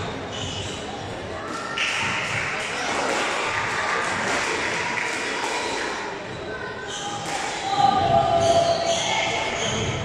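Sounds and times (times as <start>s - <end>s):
indoor hall background din: 0.0s - 10.0s.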